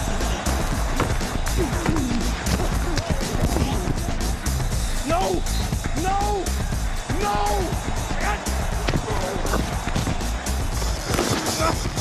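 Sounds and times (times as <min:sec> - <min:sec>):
background music: 0:00.0 - 0:12.0
football pads and helmets colliding: 0:00.8 - 0:04.2, 0:08.8 - 0:12.0.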